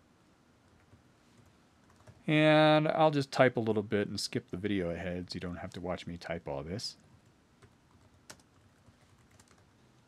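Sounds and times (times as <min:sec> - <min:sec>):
computer keyboard typing: 0:00.7 - 0:02.2, 0:07.6 - 0:09.7.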